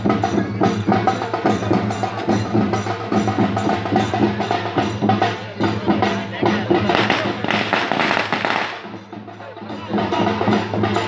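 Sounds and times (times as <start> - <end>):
firecrackers cracking: 6.8 - 9.0.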